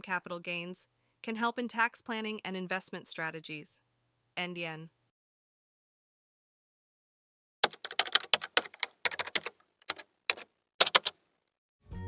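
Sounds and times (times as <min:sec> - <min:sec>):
computer keyboard typing: 0:07.6 - 0:11.2.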